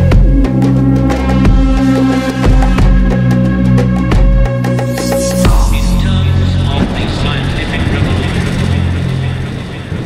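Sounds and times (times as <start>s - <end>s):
distorted synth bass: 0.0s - 9.9s.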